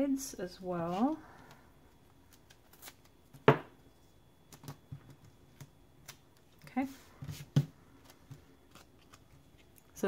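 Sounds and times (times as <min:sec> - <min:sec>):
paper card clicks and rustles: 0:08.0 - 0:10.0.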